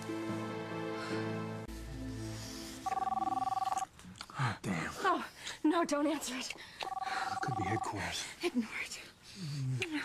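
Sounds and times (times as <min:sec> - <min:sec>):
soft background music: 0:00.0 - 0:04.0
telephone ringing: 0:02.8 - 0:03.9, 0:06.8 - 0:07.9.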